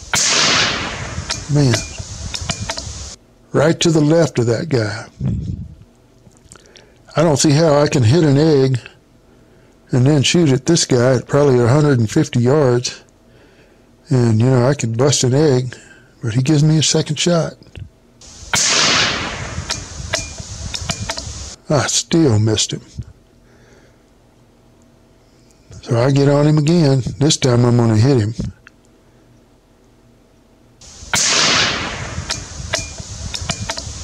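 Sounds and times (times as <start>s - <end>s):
rifle shot: 0.0s - 3.1s, 18.3s - 21.6s, 30.8s - 34.0s
sharp clicks: 0.1s - 3.1s, 31.1s - 34.0s.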